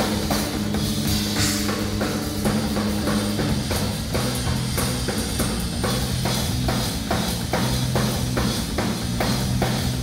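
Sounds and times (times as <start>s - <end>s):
cymbals: 0.0s - 6.8s
drum kit playing a groove: 0.0s - 10.0s
electric bass notes: 0.0s - 10.0s.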